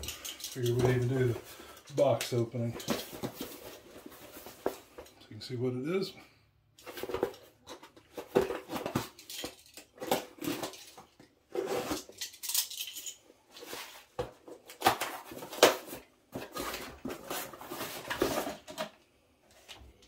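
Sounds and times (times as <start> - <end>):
cardboard rustling and tearing: 13.6 - 18.7.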